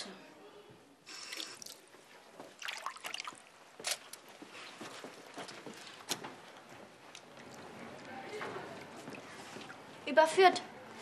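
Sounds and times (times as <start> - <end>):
hands washing splashing: 1.2 - 10.0.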